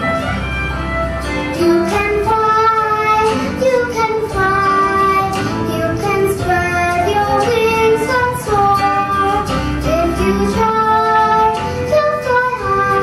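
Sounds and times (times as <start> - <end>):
girl singing: 1.5 - 13.0.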